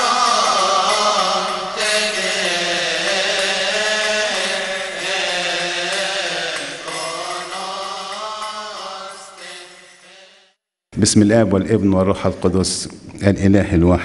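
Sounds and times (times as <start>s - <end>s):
slow liturgical chant: 0.0s - 10.6s.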